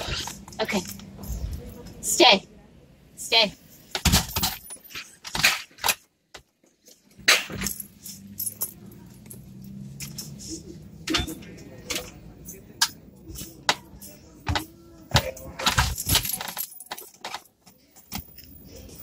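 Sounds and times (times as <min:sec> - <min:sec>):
metallic jingles and clicks: 0:06.8 - 0:10.4, 0:12.4 - 0:19.0.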